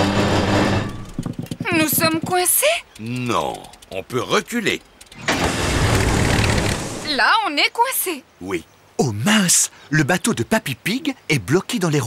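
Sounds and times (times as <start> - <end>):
cartoon motor boat engine: 0.0 - 7.1.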